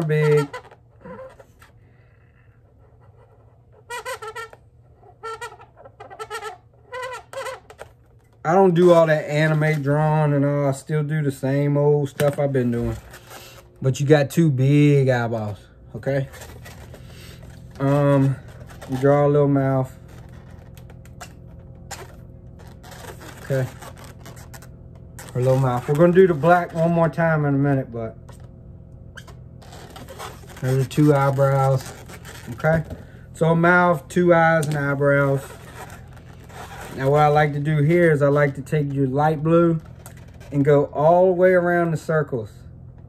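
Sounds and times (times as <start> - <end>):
marker squeaking on balloon: 0.0 - 8.3, 12.2 - 13.8, 16.1 - 27.2, 29.1 - 38.5.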